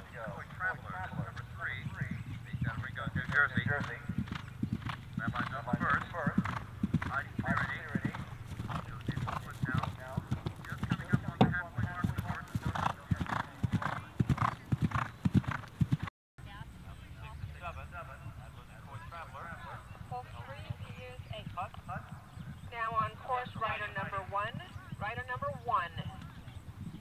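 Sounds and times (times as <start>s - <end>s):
horse hoofbeats on grass: 0.0s - 16.1s.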